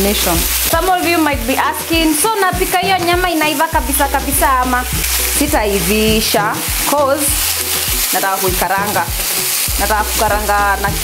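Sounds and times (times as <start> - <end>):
background music: 0.0 - 11.0
chicken sizzling in a frying pan: 0.0 - 11.0.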